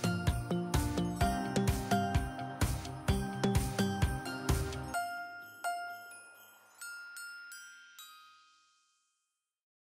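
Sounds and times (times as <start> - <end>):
chime-like jingle note: 0.0 - 9.5.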